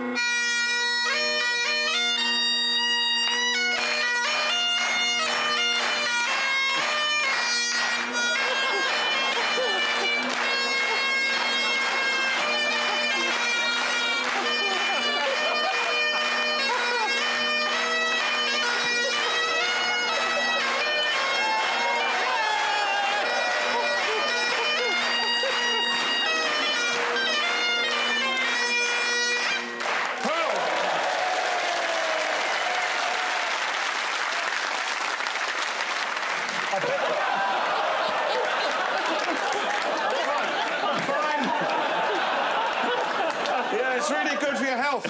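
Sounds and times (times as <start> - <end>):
bagpipes playing: 0.0 - 45.0
audience applause: 3.2 - 45.0
audience laughter: 8.3 - 11.7, 12.4 - 27.8, 36.4 - 45.0.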